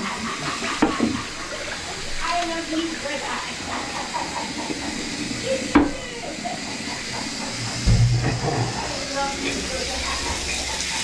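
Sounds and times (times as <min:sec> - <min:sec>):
water sloshing in toilet bowl: 0:00.0 - 0:11.0
low thump: 0:07.8 - 0:08.6.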